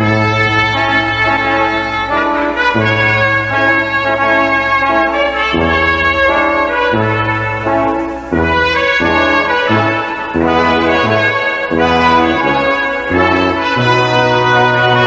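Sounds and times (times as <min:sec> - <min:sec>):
brass music with held chords: 0:00.0 - 0:15.0
steady bass: 0:00.0 - 0:15.0.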